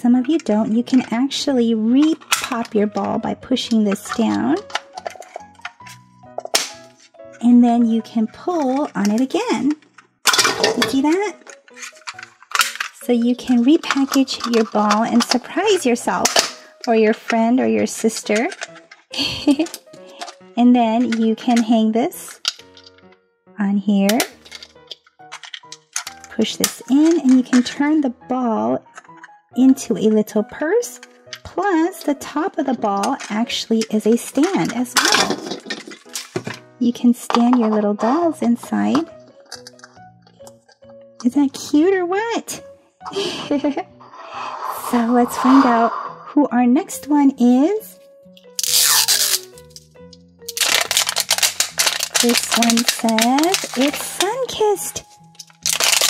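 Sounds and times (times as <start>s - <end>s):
soft background music: 0.0s - 56.0s
wrapper crackling and tearing: 11.4s - 13.0s, 24.2s - 26.3s, 34.9s - 36.6s, 48.4s - 56.0s.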